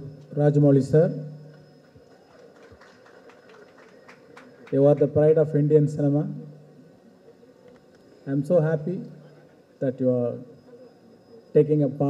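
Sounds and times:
crowded hall background noise: 0:00.0 - 0:12.0.

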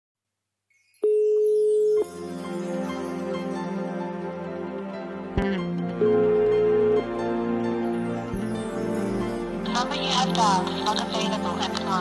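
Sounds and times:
telephone dial tone: 0:06.0 - 0:07.1.

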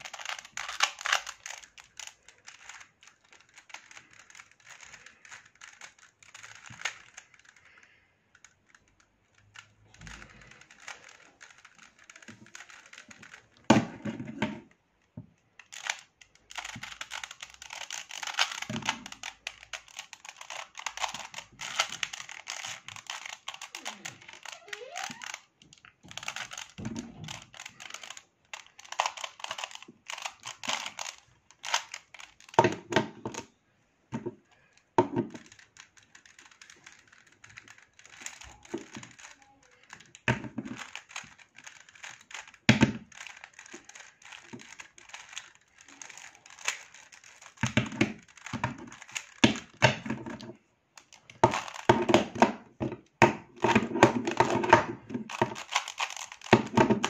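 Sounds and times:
puzzle cube clicking: 0:00.0 - 0:14.0, 0:15.6 - 0:33.5, 0:34.5 - 0:50.0, 0:51.0 - 0:52.4, 0:53.0 - 0:57.0.

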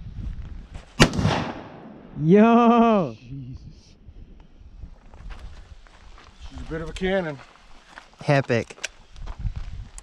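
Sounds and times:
rifle shot: 0:01.0 - 0:02.2.

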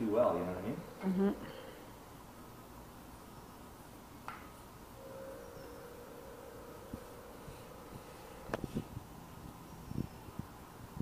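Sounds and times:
faint buzzing hum: 0:00.0 - 0:11.0.

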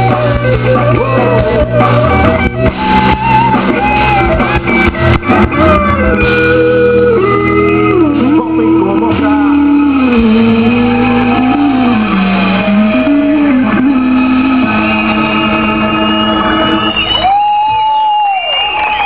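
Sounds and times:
loud live band music: 0:00.0 - 0:19.0.

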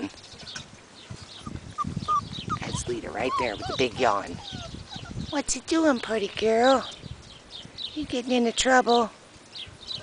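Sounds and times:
puppies rustling in grass: 0:00.0 - 0:10.0.

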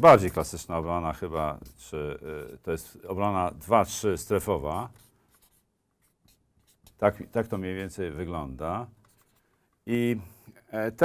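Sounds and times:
marker scratching on paper: 0:00.1 - 0:09.6.

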